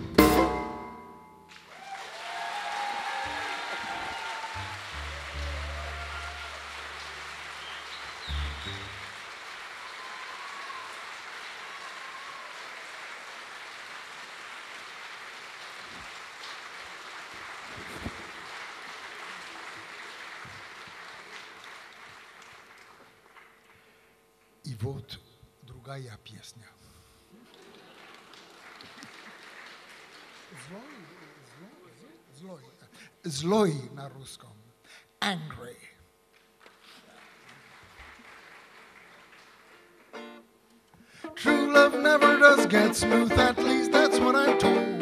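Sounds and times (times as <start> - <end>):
audience applauding: 1.5 - 24.0, 27.3 - 32.2, 36.3 - 40.6.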